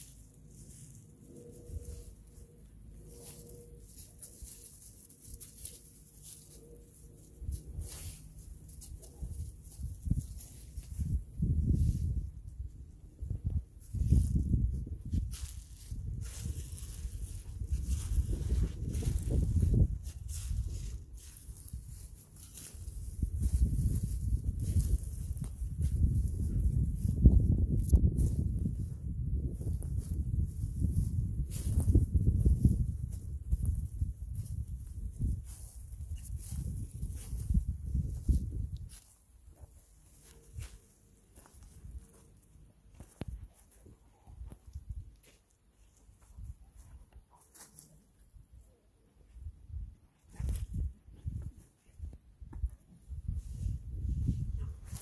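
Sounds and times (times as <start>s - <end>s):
footsteps in dry leaves: 0.0s - 48.0s, 53.1s - 55.0s
wind on microphone: 9.2s - 39.1s, 49.3s - 55.0s.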